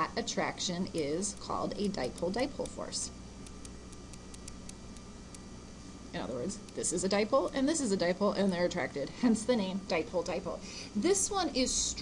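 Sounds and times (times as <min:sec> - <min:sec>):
electrical hum and hiss: 0:00.0 - 0:12.0
stylus ticking on tablet: 0:00.9 - 0:05.4, 0:06.6 - 0:07.8.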